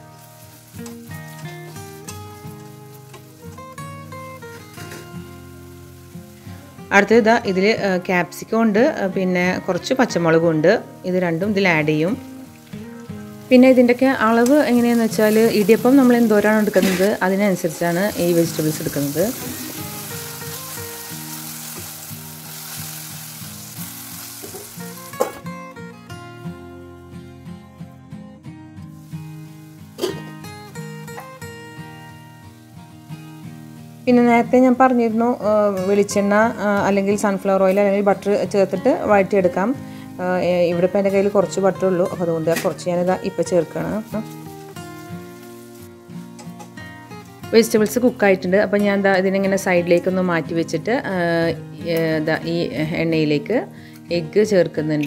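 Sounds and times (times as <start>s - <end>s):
food sizzling in oil: 0.0s - 25.5s, 28.9s - 48.8s
plucked background music: 0.0s - 55.0s.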